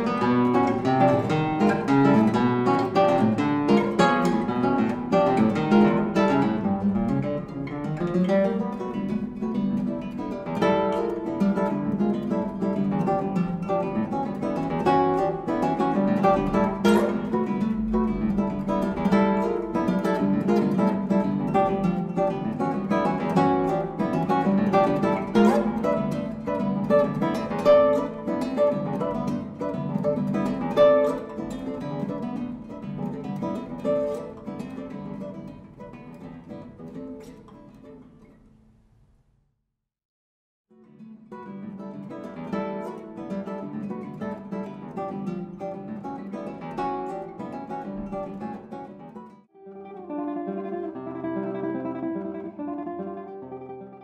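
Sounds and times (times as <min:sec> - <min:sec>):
classical guitar quick plucked notes: 0:00.0 - 0:38.9, 0:40.8 - 0:54.0.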